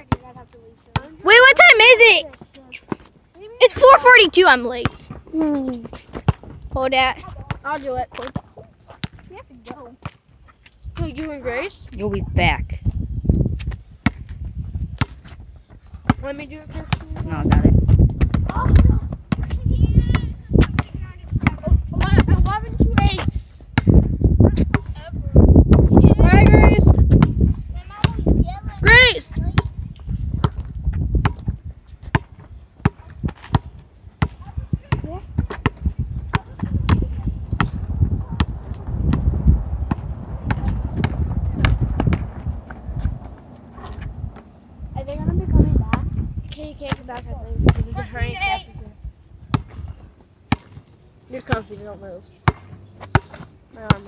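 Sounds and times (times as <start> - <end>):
basketball bouncing on asphalt: 0.0 - 54.0.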